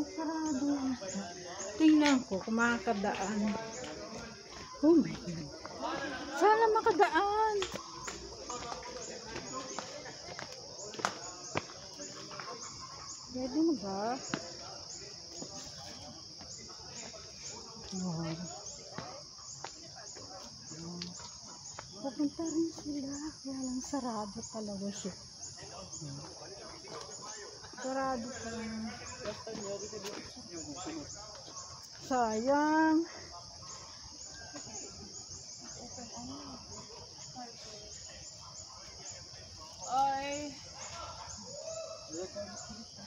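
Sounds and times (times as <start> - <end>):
high-pitched insect chorus: 0.0 - 43.0.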